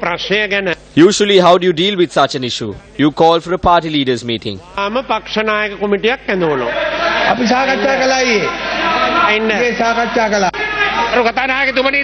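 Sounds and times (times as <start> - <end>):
man speaking into a microphone: 0.0 - 6.7.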